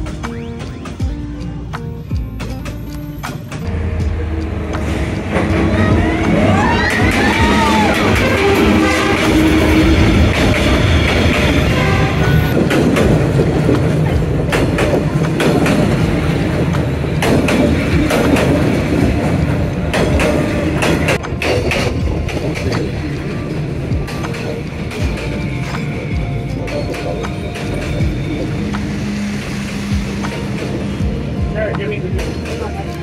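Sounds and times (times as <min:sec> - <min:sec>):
passenger train passing: 0:00.0 - 0:33.0
wheels clicking over rail joints: 0:04.4 - 0:33.0.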